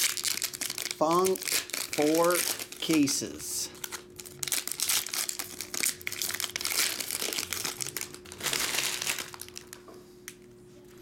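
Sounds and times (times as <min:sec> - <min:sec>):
foil wrappers crinkling and tearing: 0:00.0 - 0:09.8.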